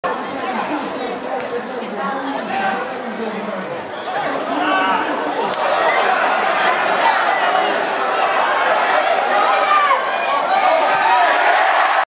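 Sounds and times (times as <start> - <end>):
voices chattering and calling: 0.1 - 11.3.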